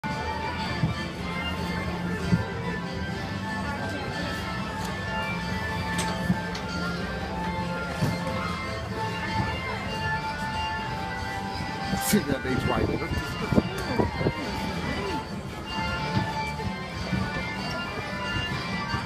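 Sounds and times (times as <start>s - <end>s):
carousel music: 0.0s - 19.0s.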